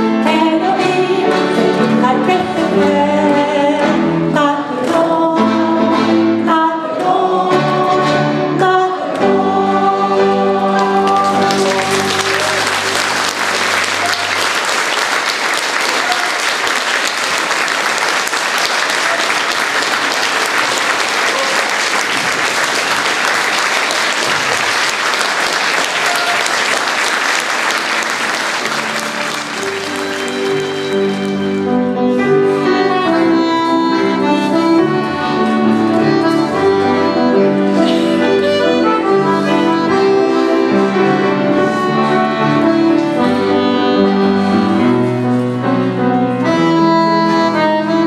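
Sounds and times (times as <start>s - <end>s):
woman singing with piano and accordion: 0.0s - 12.3s, 30.3s - 48.0s
audience applauding: 10.8s - 31.6s.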